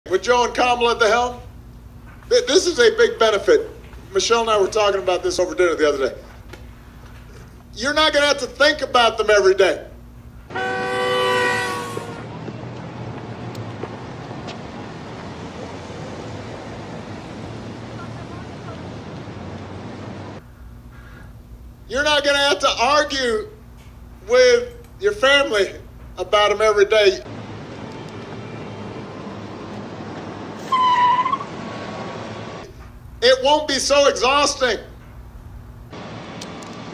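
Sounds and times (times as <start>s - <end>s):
sustained horn-like chord: 10.5s - 12.3s
city street traffic rush: 10.5s - 20.5s, 27.2s - 33.2s, 35.2s - 36.9s.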